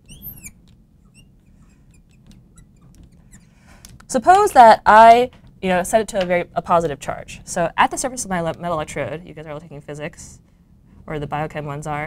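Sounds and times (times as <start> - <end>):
marker squeaking on glass: 0.0 - 3.6.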